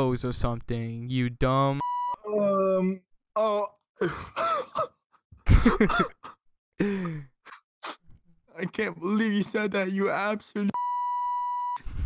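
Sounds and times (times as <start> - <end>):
man laughing: 5.4 - 7.2.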